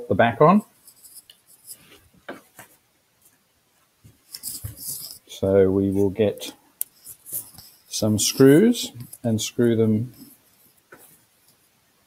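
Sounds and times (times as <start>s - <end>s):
electronics clicking and rattling: 4.1s - 5.4s.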